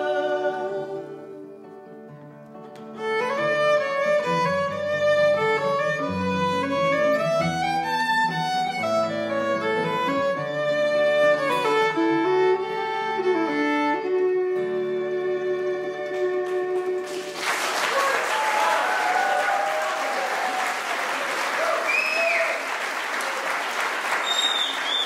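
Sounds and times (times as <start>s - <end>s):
fiddle playing melody: 0.0s - 17.1s
acoustic guitar accompaniment: 0.0s - 17.4s.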